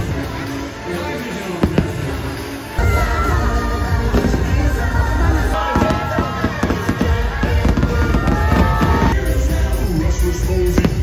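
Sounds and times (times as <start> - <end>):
loud music with heavy bass: 0.0 - 11.0
fireworks bursting: 1.6 - 9.2.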